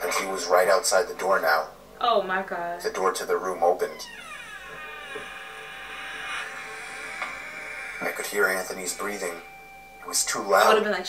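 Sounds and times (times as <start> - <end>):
eerie drone of held tones: 3.6 - 11.0.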